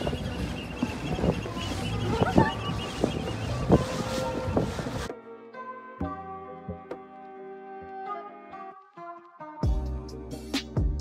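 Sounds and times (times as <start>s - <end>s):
water wash: 0.0s - 5.1s
wind buffeting microphone: 0.0s - 5.1s
boat engine rumble: 0.0s - 5.2s.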